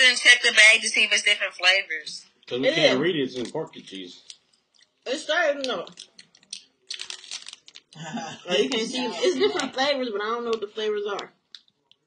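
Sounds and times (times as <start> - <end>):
plastic snack bag crinkling: 5.9 - 8.0.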